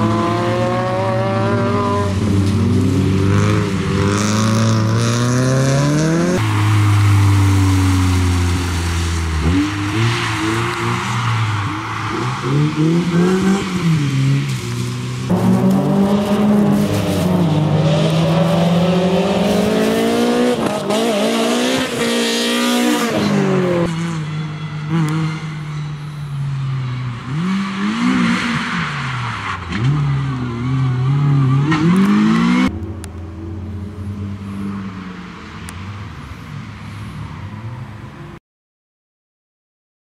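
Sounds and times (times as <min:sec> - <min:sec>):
rally cars revving past: 0:00.0 - 0:24.2.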